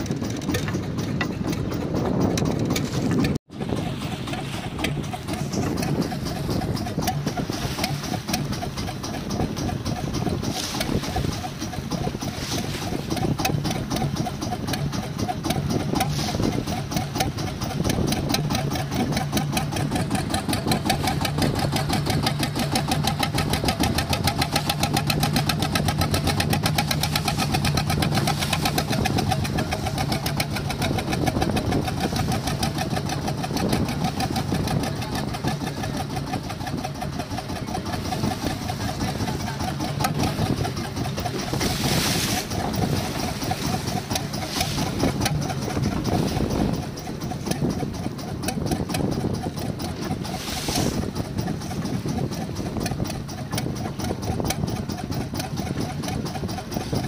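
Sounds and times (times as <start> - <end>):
boat engine running: 0.0 - 57.0.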